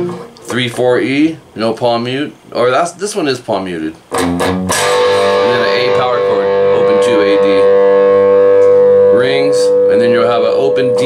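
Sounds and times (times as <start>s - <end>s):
picked guitar notes: 0.0s - 0.8s, 4.0s - 11.0s
electric guitar chord ringing: 4.1s - 11.0s.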